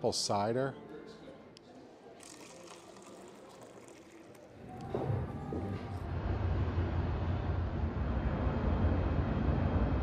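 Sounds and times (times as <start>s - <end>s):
cider pouring into paper cup: 2.2s - 4.9s.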